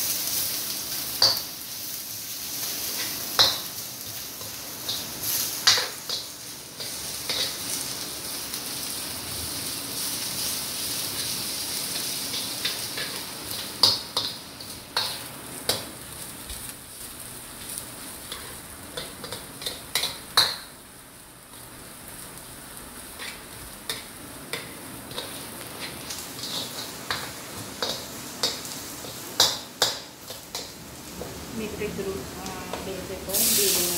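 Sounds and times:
food sizzling in a wok: 0.0 - 33.9
spatula scraping a wok: 0.2 - 8.0, 10.0 - 15.9, 17.6 - 20.5, 23.0 - 31.4.

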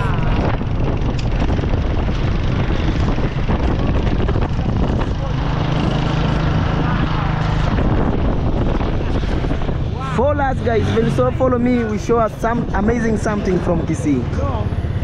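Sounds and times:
motorcycle engine running: 0.0 - 15.0
wind buffeting microphone: 0.0 - 15.0.

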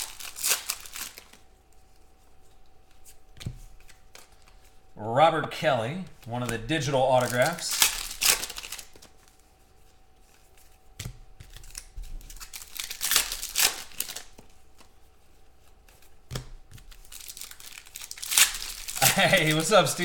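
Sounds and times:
foil packs tearing and crinkling: 0.0 - 1.5, 6.2 - 9.4, 11.4 - 14.9, 16.7 - 20.0.

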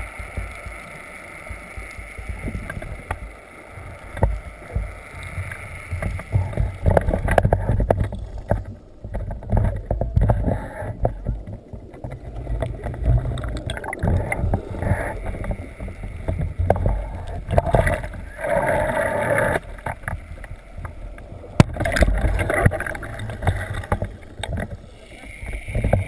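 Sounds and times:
underwater rumble of moving water: 0.0 - 26.0
small knocks and clicks: 5.5 - 18.3.

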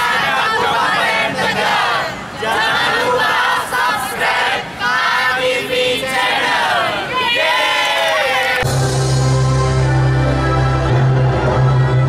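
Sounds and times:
group singing in unison: 0.0 - 8.7.

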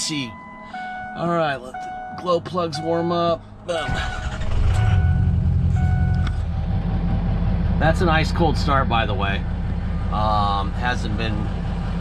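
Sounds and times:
diesel engine idling: 2.5 - 12.0.

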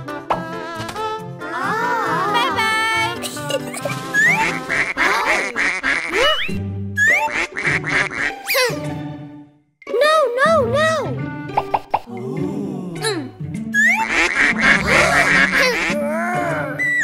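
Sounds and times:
cartoon background music: 0.0 - 17.0
vocal calls: 12.0 - 17.0.

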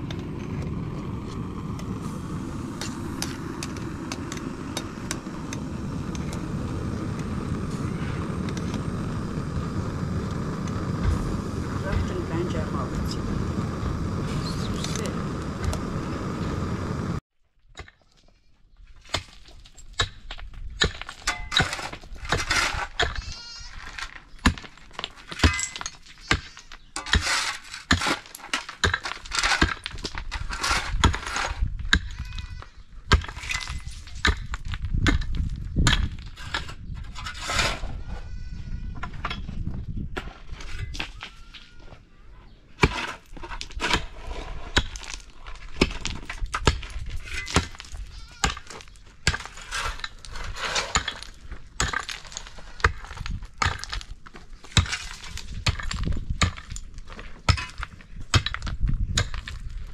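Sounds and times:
gas burner roaring: 0.0 - 17.2
pick striking stony ground: 19.0 - 32.5, 33.1 - 37.8, 42.8 - 59.9
livestock bleating: 23.2 - 23.7, 38.0 - 39.0, 48.1 - 48.5.

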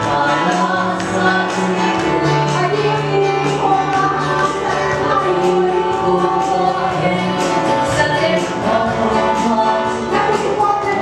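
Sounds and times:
live gospel band music: 0.0 - 11.0
voices singing along: 0.0 - 11.0.

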